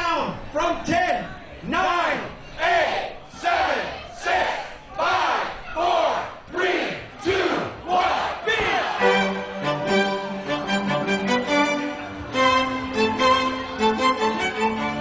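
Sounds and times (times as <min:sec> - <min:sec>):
men chanting over loudspeakers: 0:01.7 - 0:09.0
crowd chanting: 0:01.7 - 0:15.0
music: 0:09.0 - 0:15.0.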